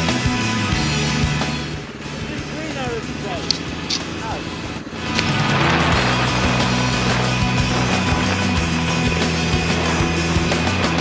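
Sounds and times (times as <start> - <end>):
background music: 0.0 - 11.0
motorcycle engine idling: 0.0 - 11.0
sharp clicks: 3.4 - 4.1.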